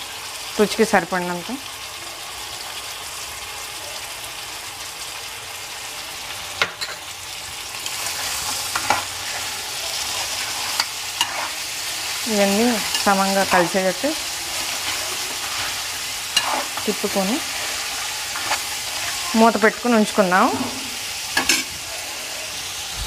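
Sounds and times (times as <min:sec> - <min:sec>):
food sizzling in hot oil: 0:00.0 - 0:23.0
spoon stirring in pan: 0:07.8 - 0:22.8.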